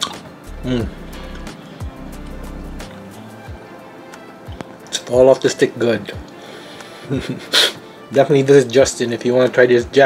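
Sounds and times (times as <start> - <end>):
sharp breath out: 6.4 - 8.0
man laughing: 7.0 - 7.8.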